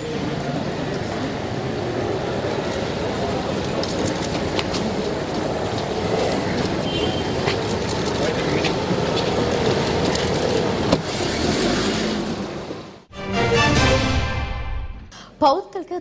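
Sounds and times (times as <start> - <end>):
crowd and street noise: 0.0 - 13.1.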